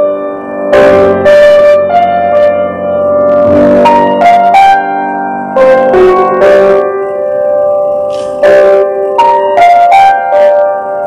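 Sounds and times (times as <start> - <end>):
piano chords ringing: 0.0 - 11.0.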